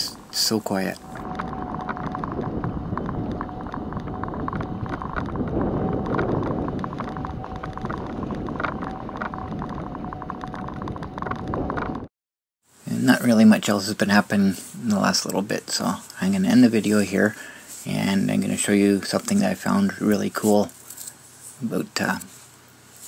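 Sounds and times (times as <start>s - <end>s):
mobility scooter whine: 0.0s - 12.1s
wheels rattling on pavement: 0.2s - 12.1s.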